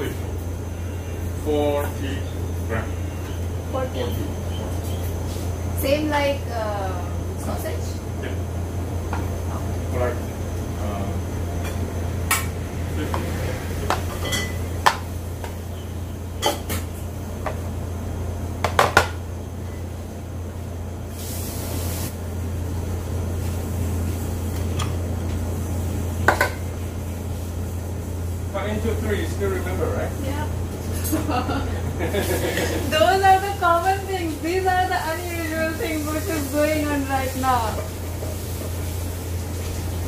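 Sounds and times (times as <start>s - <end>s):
low kitchen hum: 0.0s - 40.0s
voices: 1.0s - 5.2s, 5.8s - 8.5s, 28.5s - 37.9s.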